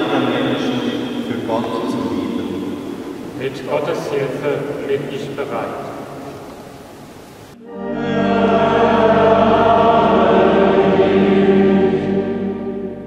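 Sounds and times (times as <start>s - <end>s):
church choir singing: 0.0s - 7.0s, 7.6s - 13.0s.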